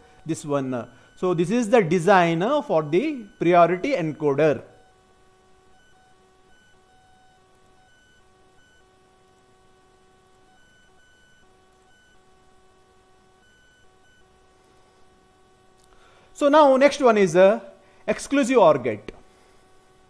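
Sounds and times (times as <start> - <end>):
faint high whine: 0.0 - 20.0.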